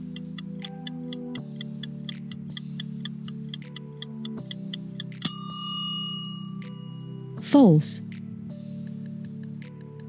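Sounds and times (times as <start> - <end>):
background music: 0.0 - 10.0
bell ding: 5.2 - 7.3.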